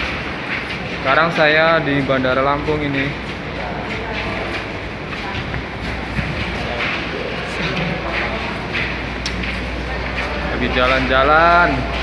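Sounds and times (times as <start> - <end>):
indistinct voices: 0.0 - 12.0.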